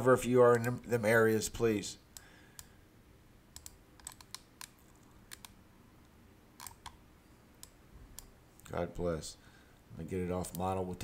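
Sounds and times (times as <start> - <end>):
computer mouse clicks: 3.5 - 5.6, 6.6 - 7.0.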